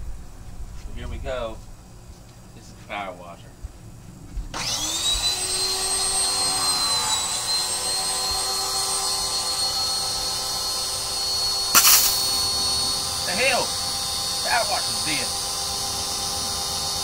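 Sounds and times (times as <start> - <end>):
pressure washer motor whine: 4.6 - 17.0.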